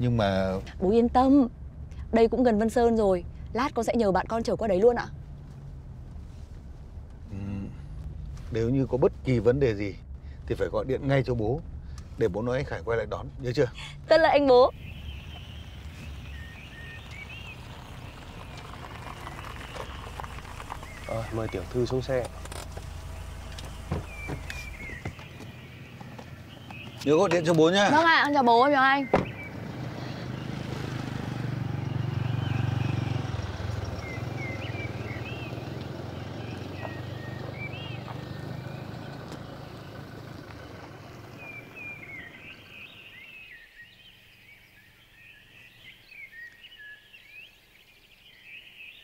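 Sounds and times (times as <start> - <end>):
car engine idling: 0.0 - 43.5
small birds chirping: 7.2 - 49.0.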